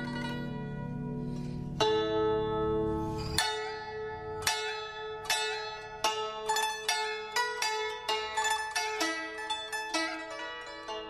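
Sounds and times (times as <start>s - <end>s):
plucked-string notes ringing: 0.0s - 11.0s.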